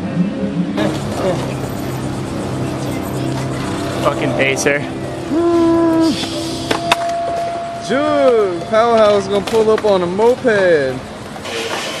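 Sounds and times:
person calling a long note: 5.1 - 9.3.

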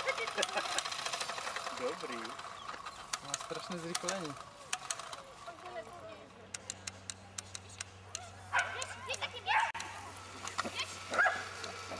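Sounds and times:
sharp clicks: 2.6 - 5.2, 6.5 - 10.7
dog yipping and barking: 8.5 - 9.8, 11.1 - 11.5.

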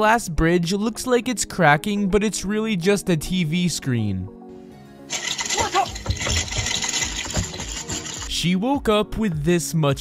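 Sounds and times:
crackling cracking-glass effect: 5.1 - 8.4.

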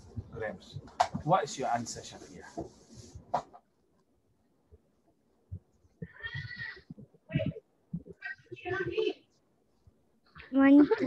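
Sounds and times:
child's voice over video call: 7.3 - 9.3.

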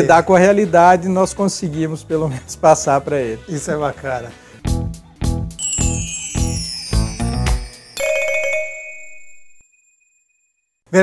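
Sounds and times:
bright bell-like chime: 5.6 - 10.4.

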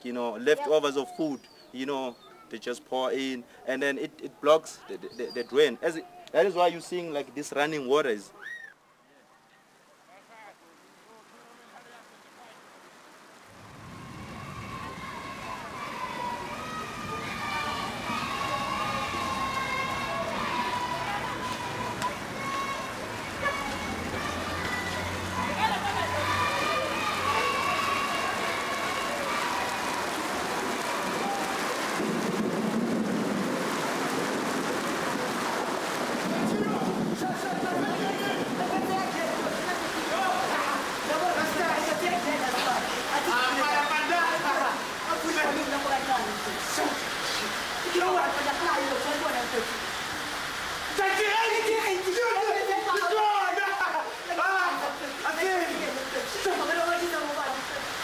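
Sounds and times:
steady hiss: 10.1 - 58.0
voices singing slow melody: 14.2 - 30.6.

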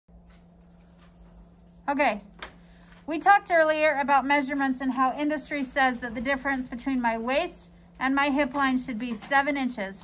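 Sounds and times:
steady low hum: 0.1 - 10.0
woman speaking: 1.8 - 2.3, 3.1 - 10.0.

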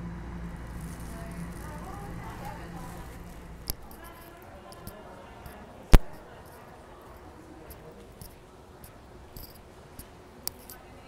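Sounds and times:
subway train rumble and hum: 0.0 - 5.6
sharp click: 5.9 - 6.2.

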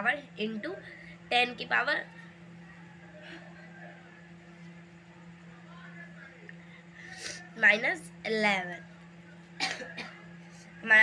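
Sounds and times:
woman speaking: 0.0 - 2.3, 7.5 - 8.9
woman clearing her throat: 9.6 - 10.3.

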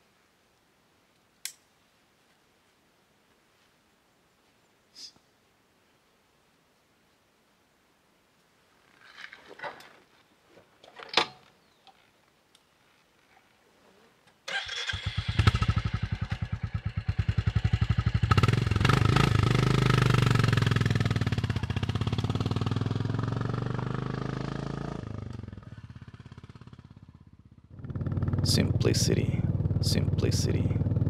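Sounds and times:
motorcycle engine idling and riding off: 14.5 - 31.0.

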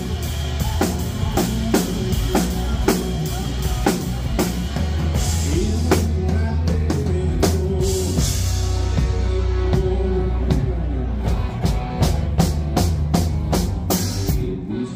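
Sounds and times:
drum kit beat: 0.0 - 14.7
electric guitar: 0.0 - 14.9.

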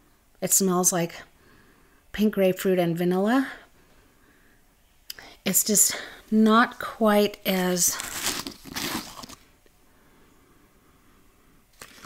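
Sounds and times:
rustling handling noise: 7.5 - 9.6.

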